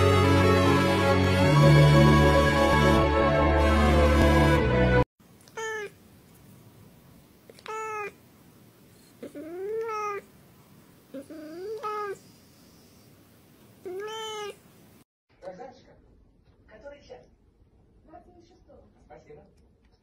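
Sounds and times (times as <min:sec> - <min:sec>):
cat meowing: 0:05.4 - 0:06.0, 0:07.5 - 0:08.2, 0:09.2 - 0:10.3, 0:11.2 - 0:12.2, 0:13.8 - 0:14.6.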